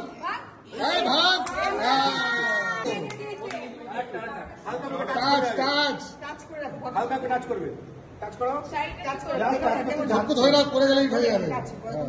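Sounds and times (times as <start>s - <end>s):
people chattering: 0.0s - 7.6s.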